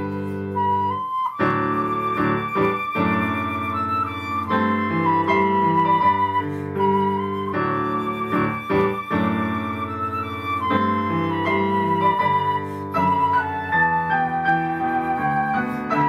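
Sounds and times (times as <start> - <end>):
flute playing slow melody: 0.0 - 16.0.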